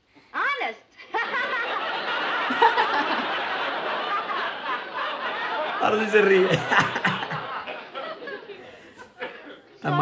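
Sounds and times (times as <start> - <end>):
man and woman laughing: 1.1 - 10.0.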